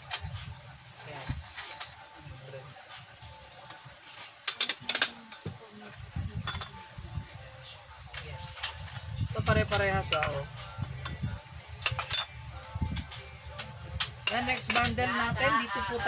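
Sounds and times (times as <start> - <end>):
ceramic plates clinking: 4.2 - 5.5, 6.4 - 6.8, 11.8 - 12.4, 13.0 - 15.3.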